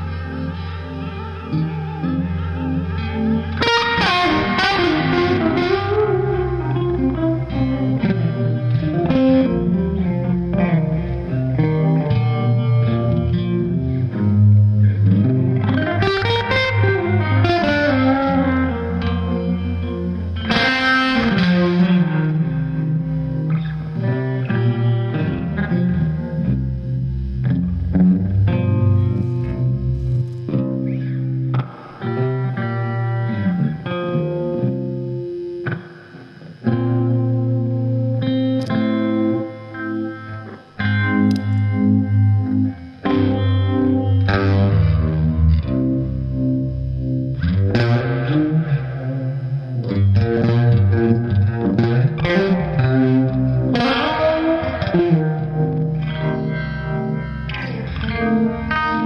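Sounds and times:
electric guitar blues jam: 0.0 - 59.0.

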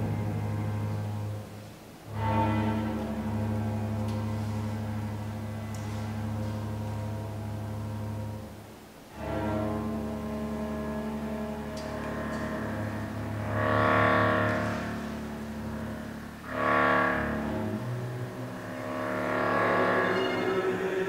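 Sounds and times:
low bowed cello and double bass: 0.0 - 21.0
loud ensemble chords: 9.1 - 21.0.

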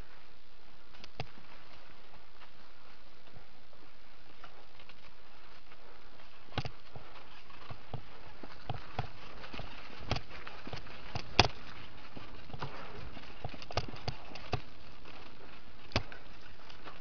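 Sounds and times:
mountain bike rattling over dirt: 4.0 - 17.0.

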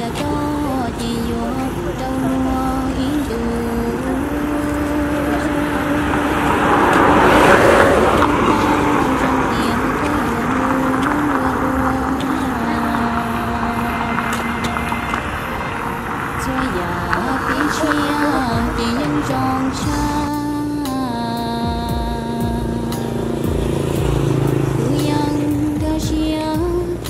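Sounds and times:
slow melody of long held notes: 0.0 - 27.0
vehicle passing on road: 0.0 - 27.0.

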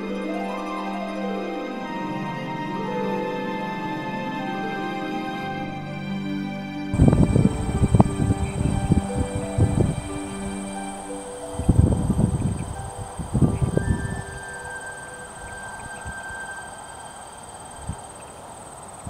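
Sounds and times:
soft background music: 0.0 - 18.2.

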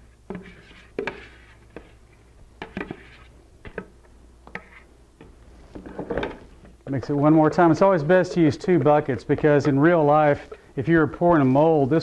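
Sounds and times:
spatula scraping plastic bucket: 0.3 - 3.8, 4.5 - 4.9, 6.9 - 11.6.

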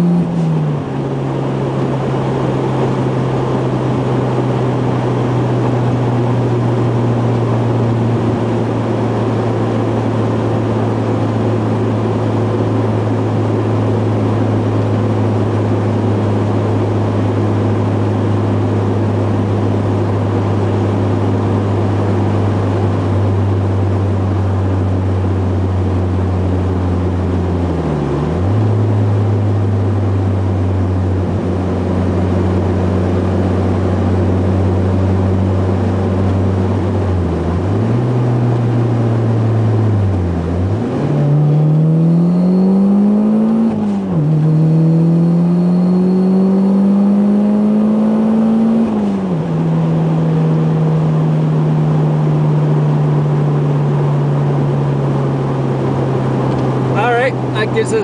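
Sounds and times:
turbocharged car engine accelerating: 0.0 - 58.0.

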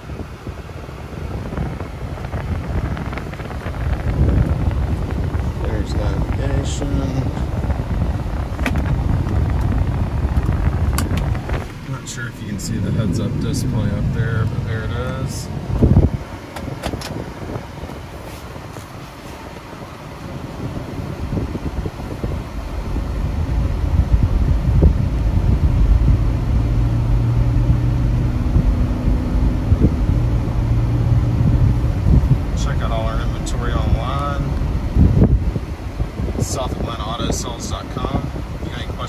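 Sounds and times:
road and tyre rumble: 0.0 - 39.0.

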